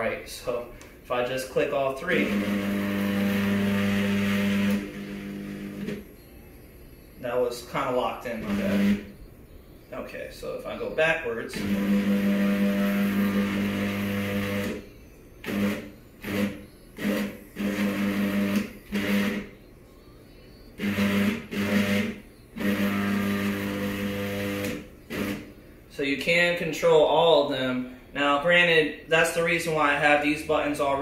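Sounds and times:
stepper motors humming: 2.1s - 10.0s, 10.7s - 25.6s.

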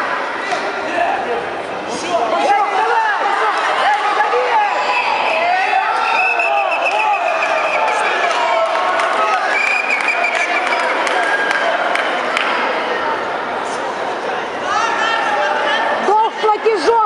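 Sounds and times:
crowd shouting: 2.0s - 13.2s.

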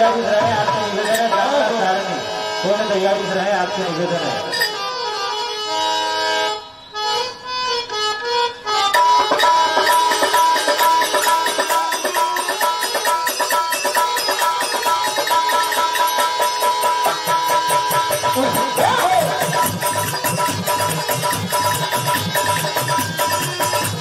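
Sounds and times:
harmonium melody: 0.0s - 24.0s
hand drums playing fast rhythm: 9.0s - 24.0s.

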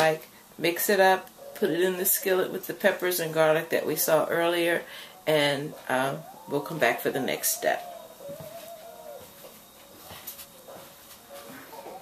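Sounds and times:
dog whimpering: 5.0s - 9.5s, 10.6s - 12.0s.

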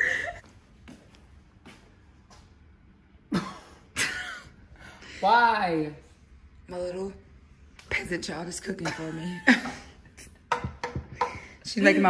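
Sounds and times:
woman coughing: 3.3s - 4.5s.

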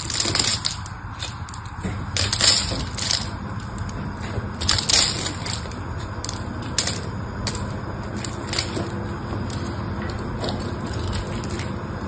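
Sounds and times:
soap flakes crackling: 0.0s - 12.0s.

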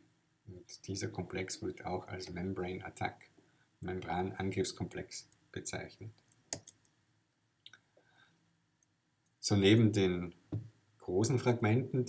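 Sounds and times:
computer clicks: 6.2s - 7.0s.

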